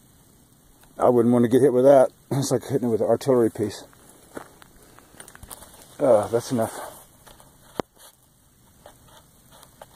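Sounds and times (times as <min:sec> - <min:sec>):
footsteps on dry dirt: 0:03.8 - 0:07.6.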